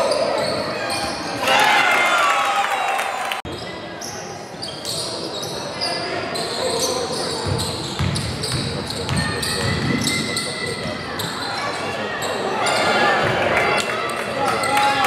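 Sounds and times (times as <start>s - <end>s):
sneakers squeaking: 0.0s - 1.6s, 3.5s - 13.4s
basketball bouncing on court: 7.4s - 11.0s.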